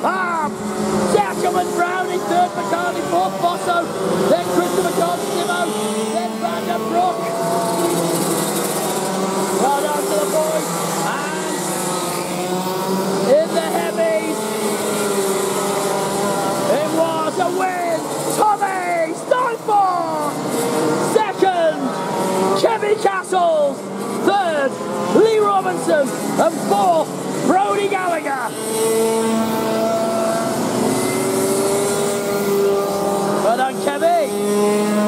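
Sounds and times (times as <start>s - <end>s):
kart engines running: 0.0s - 35.0s.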